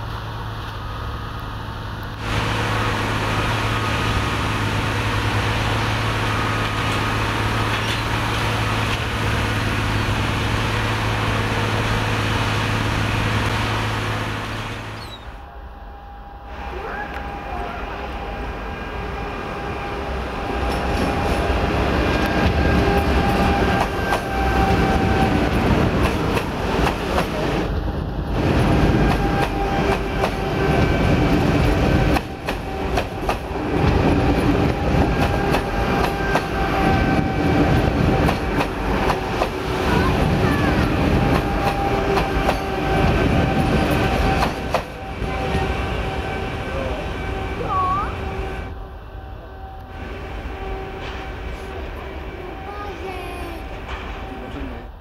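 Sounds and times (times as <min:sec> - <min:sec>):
train wheels rumbling on rail: 0:00.0 - 0:55.0
clicks of train wheels: 0:06.6 - 0:09.2, 0:20.6 - 0:27.8, 0:28.5 - 0:45.7, 0:53.7 - 0:54.8.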